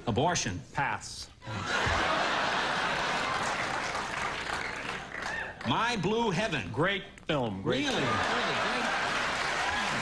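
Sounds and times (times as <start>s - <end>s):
audience applauding: 2.0s - 5.8s, 8.0s - 10.0s.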